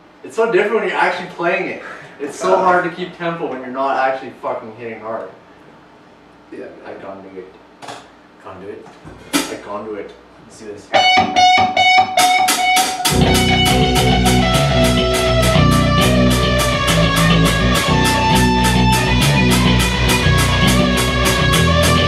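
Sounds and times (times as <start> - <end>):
heavy metal guitar and bass riff: 10.9 - 22.0
high picked guitar notes: 10.9 - 22.0.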